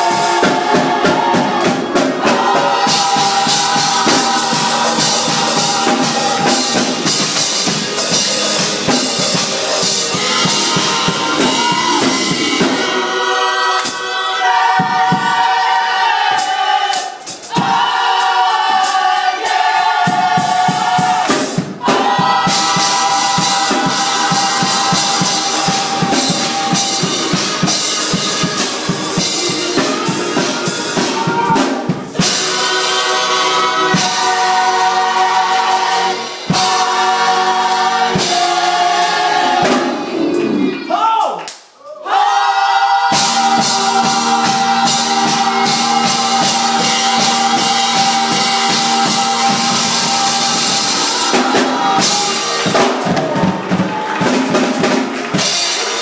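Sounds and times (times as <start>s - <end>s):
drum kit: 0.0s - 41.2s, 43.0s - 56.0s
gospel choir singing: 0.0s - 41.4s, 42.0s - 56.0s.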